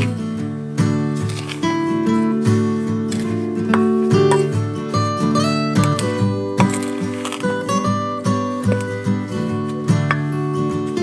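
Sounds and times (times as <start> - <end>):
plucked acoustic guitar music: 0.0 - 11.0.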